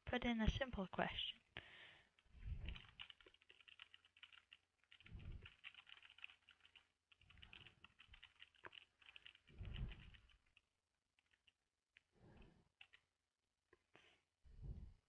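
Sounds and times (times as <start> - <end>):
computer keyboard typing: 2.6 - 11.6, 12.8 - 13.1.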